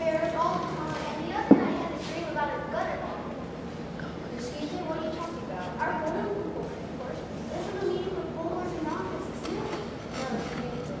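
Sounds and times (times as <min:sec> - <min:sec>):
children speaking in echoing hall: 0:00.0 - 0:11.0.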